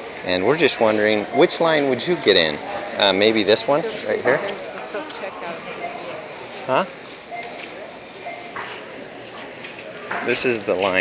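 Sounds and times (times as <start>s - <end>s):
indistinct voices of shoppers: 0.0s - 11.0s.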